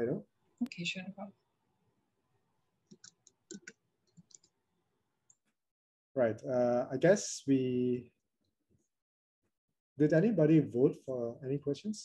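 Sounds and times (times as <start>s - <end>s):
faint computer clicks: 2.9s - 4.6s.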